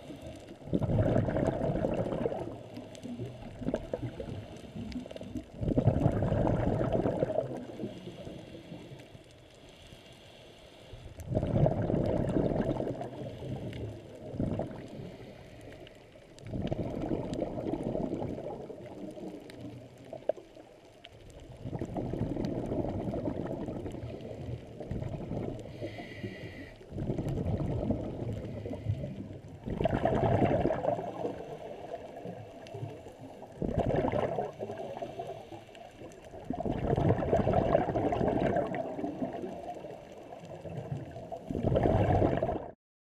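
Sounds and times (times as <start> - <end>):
bubbles gurgling underwater: 0.0 - 8.3, 11.2 - 15.3, 16.4 - 35.4, 36.0 - 42.8
diver breathing: 7.6 - 11.2, 14.8 - 16.1, 25.6 - 27.0, 34.7 - 36.0.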